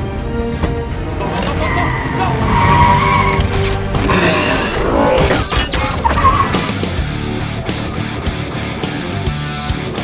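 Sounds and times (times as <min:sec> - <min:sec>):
orchestral score: 0:00.0 - 0:06.8
tyres squealing: 0:01.5 - 0:06.8.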